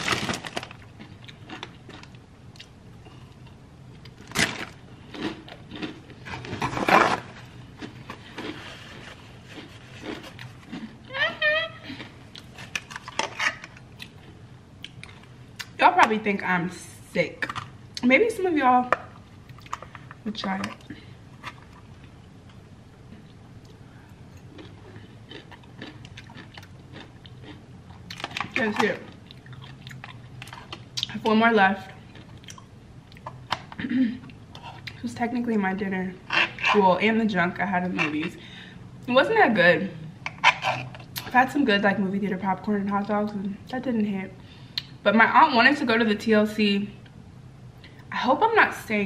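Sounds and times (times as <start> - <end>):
chewing and crunching pickle: 0.0 - 11.1, 11.9 - 15.8, 19.4 - 31.3, 31.9 - 35.0
low steady hum: 0.0 - 49.0.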